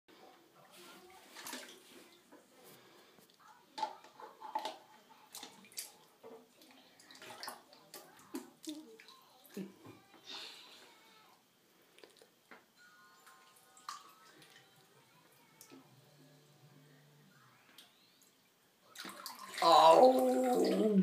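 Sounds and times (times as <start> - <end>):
bath water splashing: 1.1 - 2.2, 18.9 - 21.0.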